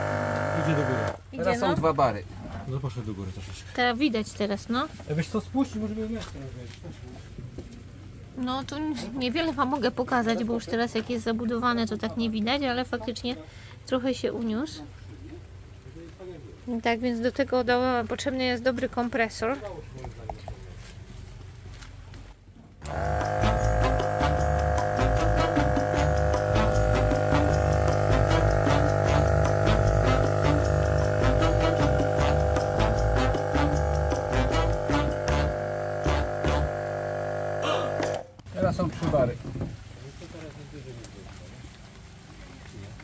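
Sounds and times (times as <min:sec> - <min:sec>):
air compressor droning: 0:00.0 - 0:01.3, 0:22.8 - 0:38.4.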